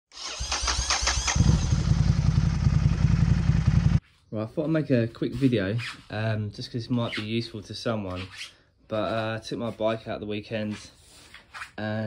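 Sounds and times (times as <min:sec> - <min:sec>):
motorcycle engine starting and running: 0:00.1 - 0:04.0.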